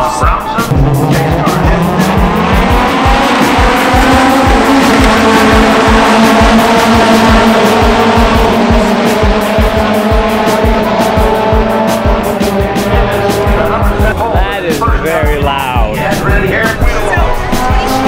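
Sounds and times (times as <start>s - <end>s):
background music with steady beat: 0.0s - 18.0s
race car engines at high revs: 0.0s - 18.0s.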